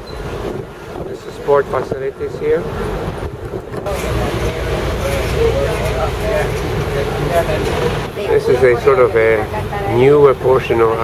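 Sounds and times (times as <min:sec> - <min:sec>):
bus engine and road rumble: 0:00.0 - 0:11.0
voices: 0:01.0 - 0:11.0.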